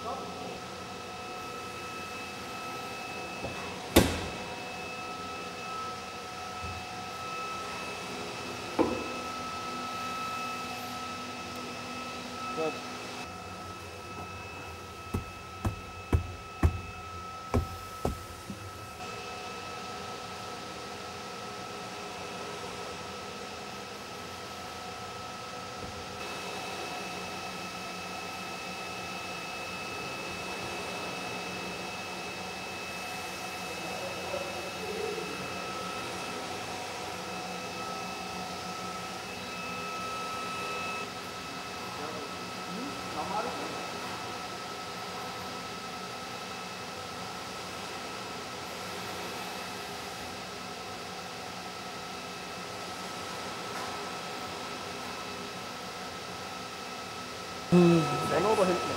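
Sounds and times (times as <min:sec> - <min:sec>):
workshop machinery hum: 0:00.0 - 0:58.9
high-pitched tones: 0:57.7 - 0:58.9.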